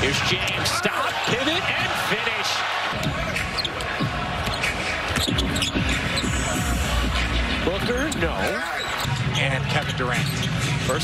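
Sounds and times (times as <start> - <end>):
arena crowd noise: 0.0 - 11.0.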